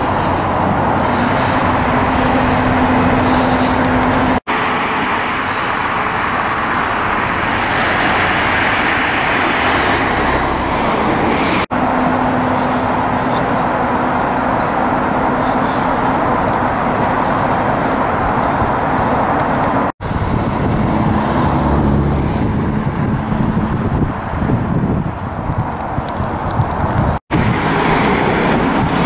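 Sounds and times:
road traffic noise: 0.0 - 29.0.

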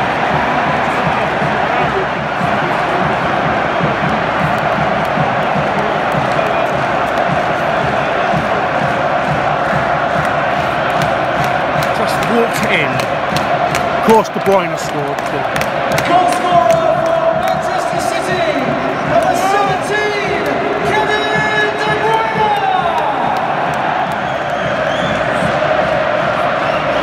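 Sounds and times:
stadium crowd cheering: 0.0 - 27.0
sharp claps: 0.1 - 27.0.

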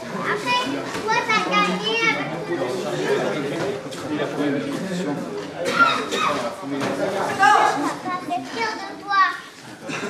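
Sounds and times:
children calling and chattering: 0.0 - 10.0
murmur of talk: 0.0 - 10.0.

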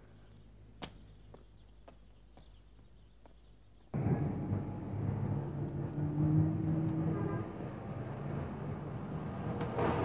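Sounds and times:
street traffic: 3.9 - 10.0.

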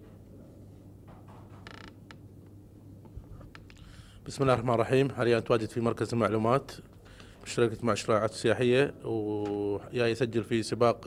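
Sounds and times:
low steady hum: 0.0 - 11.0
short creak: 1.5 - 2.2.

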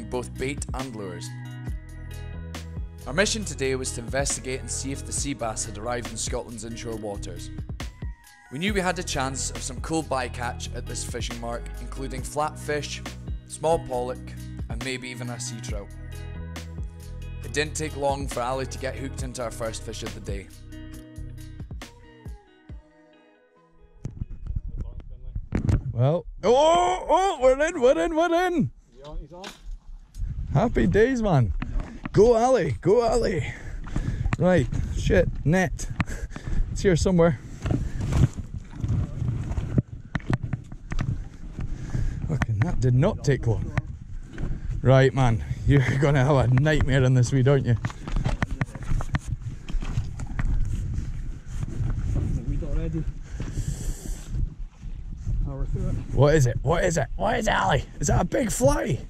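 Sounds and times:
microphone handling noise: 24.0 - 26.4, 29.6 - 32.2, 33.7 - 56.7
man shouting: 26.4 - 28.7, 56.9 - 57.9
wind buffeting microphone: 30.0 - 59.0
footsteps crunching over stones: 47.6 - 52.4.

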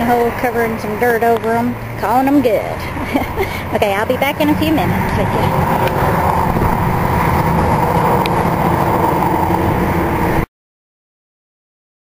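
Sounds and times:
engine rumble: 0.0 - 10.5.

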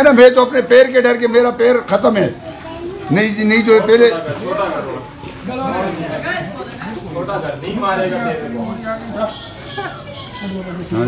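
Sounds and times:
people talking and calling out: 0.0 - 11.0
children's voices: 2.1 - 3.8, 9.2 - 11.0.

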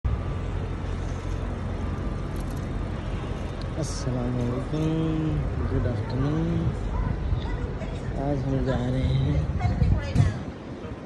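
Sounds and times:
motor vehicle engines rumbling: 0.0 - 11.0
road noise: 0.0 - 11.0.

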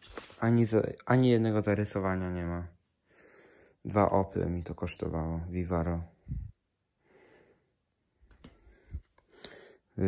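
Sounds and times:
soft breathing: 3.0 - 3.9, 6.2 - 10.0.

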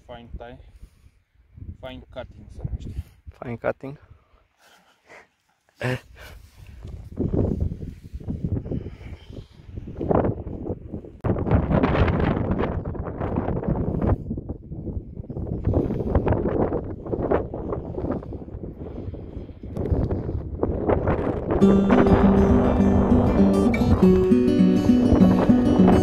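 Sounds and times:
wind buffeting microphone: 0.0 - 3.3, 6.4 - 26.0.

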